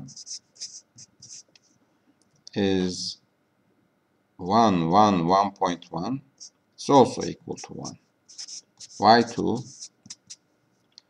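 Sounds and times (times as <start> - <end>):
marker pen scratching on paper: 0.0 - 1.8, 6.4 - 10.4.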